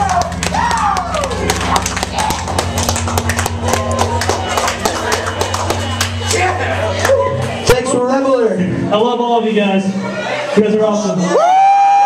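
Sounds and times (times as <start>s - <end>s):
guitar and bass ringing: 0.0s - 12.0s.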